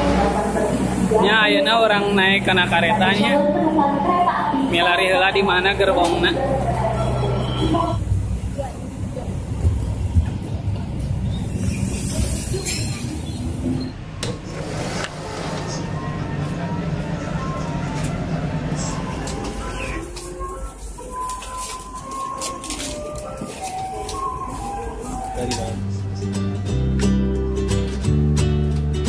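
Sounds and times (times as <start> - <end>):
passenger train rumble: 0.0 - 28.1
indistinct voices: 15.5 - 26.6
background music: 16.0 - 29.0.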